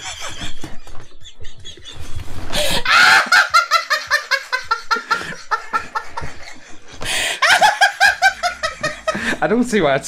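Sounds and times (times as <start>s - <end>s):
hearty human laughter: 0.0s - 9.4s.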